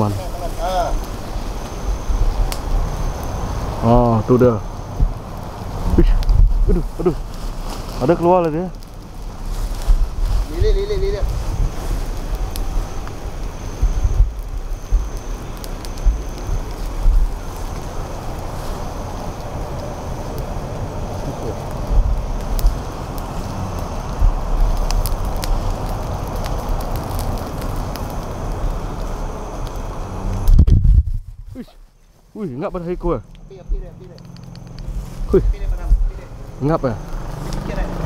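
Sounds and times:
wind on microphone: 0.0s - 8.0s, 8.7s - 31.9s, 32.9s - 37.1s
rush of flame with crackles: 0.0s - 38.0s
microphone handling noise: 5.8s - 8.0s, 9.2s - 15.2s, 15.8s - 17.4s, 30.4s - 31.9s, 33.0s - 36.2s.

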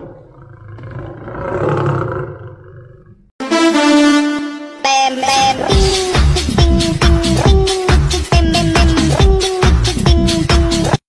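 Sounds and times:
deep lion-like roar: 0.0s - 3.3s.

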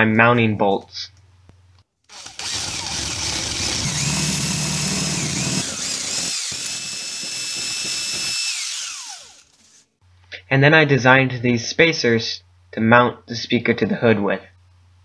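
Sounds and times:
cordless drill whining: 2.1s - 9.9s.

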